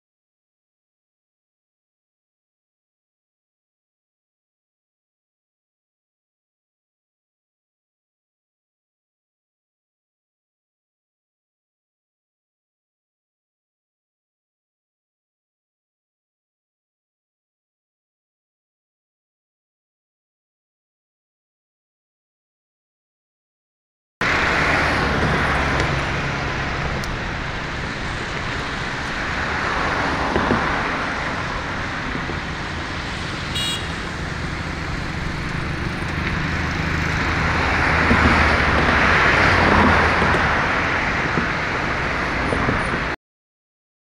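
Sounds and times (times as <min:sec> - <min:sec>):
highway traffic rushing: 0:24.2 - 0:43.2.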